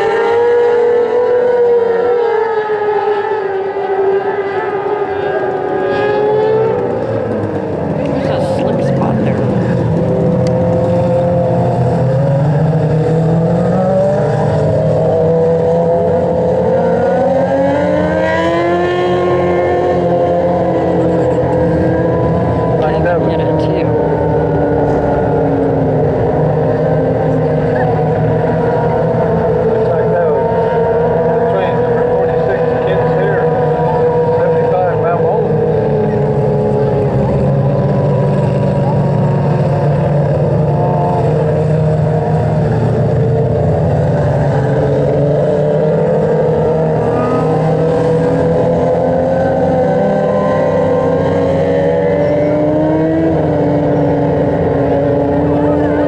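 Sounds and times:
race car engines idling: 3.4 - 56.0.

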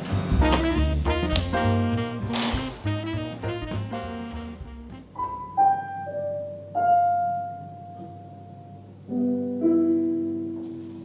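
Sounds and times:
digital piano single notes: 0.0 - 11.0.

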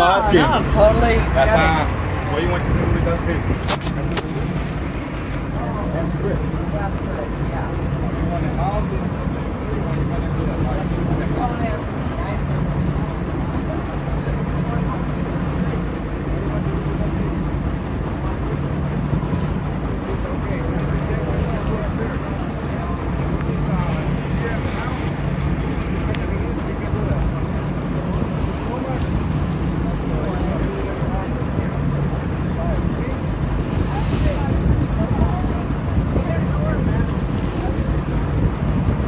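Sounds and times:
boat engine droning: 0.0 - 39.0
water rushing along hull: 0.0 - 39.0
wind on microphone: 0.0 - 39.0.

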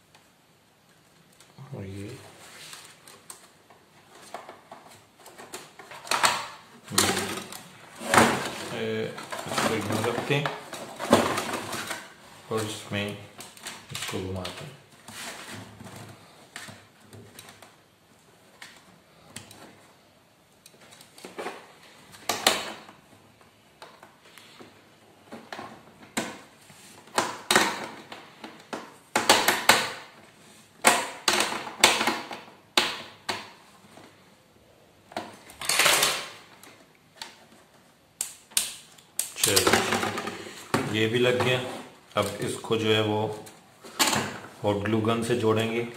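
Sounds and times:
clicks and knocks of handling plastic: 2.7 - 17.8.

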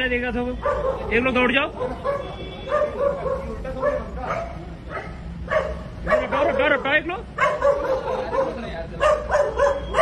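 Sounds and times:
dog barking in high yelps: 0.6 - 10.0.

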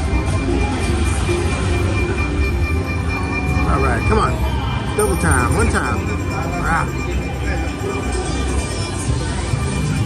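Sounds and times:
electronic chirping notes: 0.0 - 9.6
busy casino din: 0.0 - 10.0
slot machine music and effects: 0.0 - 10.0.

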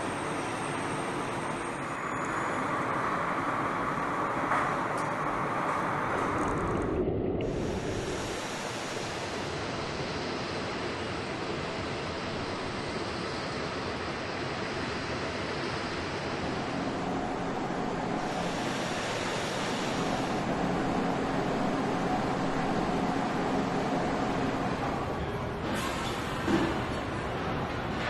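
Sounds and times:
faint steady hum: 0.0 - 25.5
steady rushing noise: 2.6 - 28.0.

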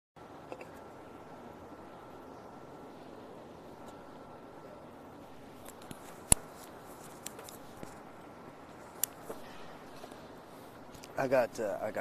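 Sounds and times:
faint outdoor background: 0.2 - 12.0
sharp click: 9.0 - 9.4.

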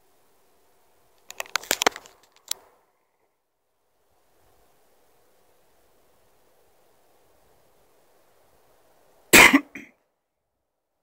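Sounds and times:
camera handling clicks and rubs: 1.2 - 2.7.

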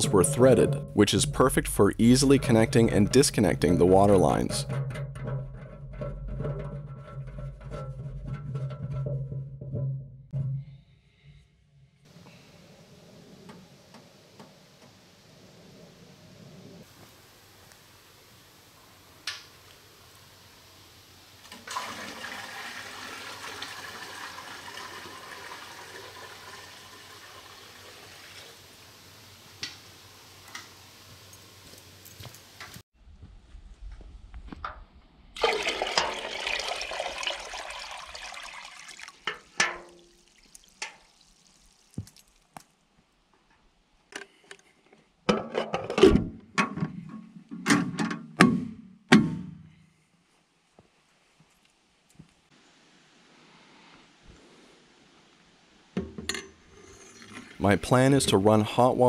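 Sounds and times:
water pouring into metal can: 21.5 - 28.9, 35.4 - 42.6, 56.7 - 57.8.

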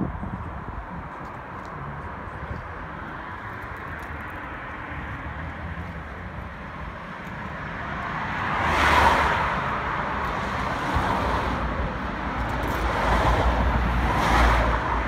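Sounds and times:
outdoor background noise: 0.0 - 15.0
car passing: 2.9 - 15.0.

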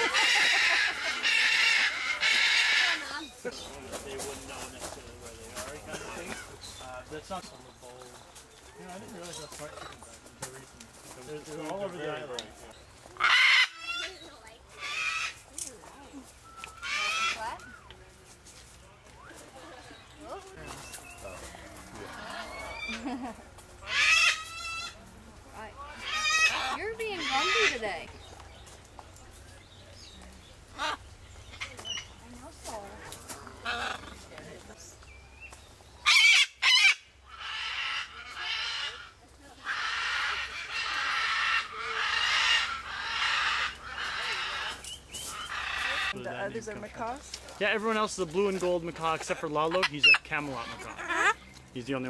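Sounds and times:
cockatoo screeching: 0.0 - 3.2, 13.2 - 14.2, 14.8 - 15.4, 16.8 - 17.5, 23.8 - 25.0, 25.9 - 27.9, 36.0 - 46.2, 49.8 - 51.4
macaw squawk: 0.0 - 3.3, 13.2 - 15.4, 16.5 - 17.8, 23.8 - 25.0, 25.9 - 28.0, 30.7 - 32.2, 36.0 - 46.2, 49.7 - 51.5.

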